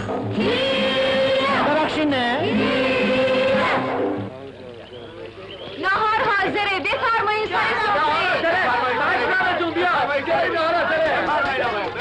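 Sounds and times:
group singing held note: 0.0 - 4.3
faint background voices: 3.6 - 12.0.

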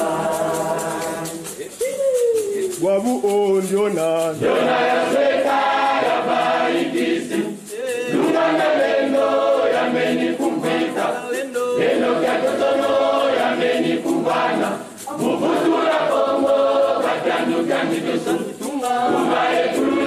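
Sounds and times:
choir singing: 0.0 - 1.7, 4.4 - 20.0.

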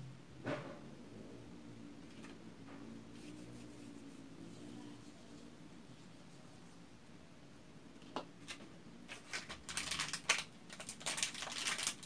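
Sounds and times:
plastic wrapper crinkling: 8.4 - 12.0.

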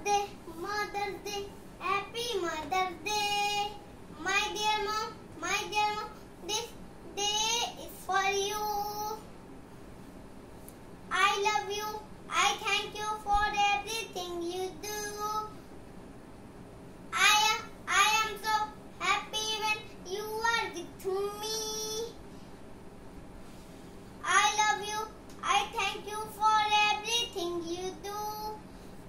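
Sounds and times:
young boy singing: 0.0 - 9.2, 11.1 - 15.5, 17.1 - 22.2, 24.2 - 28.6.

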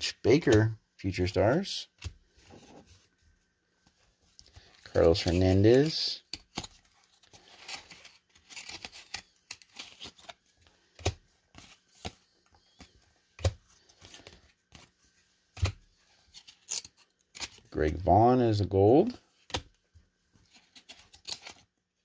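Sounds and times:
cards flicking and sliding: 4.6 - 14.9.

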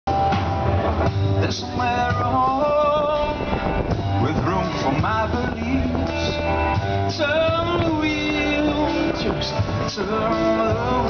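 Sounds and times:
live rock band playing: 0.1 - 11.0
melody of held notes: 0.1 - 11.0.

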